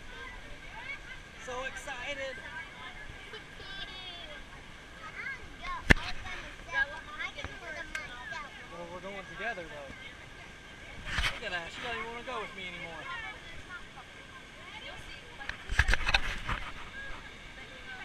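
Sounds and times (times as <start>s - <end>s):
voices chattering: 0.0s - 18.0s.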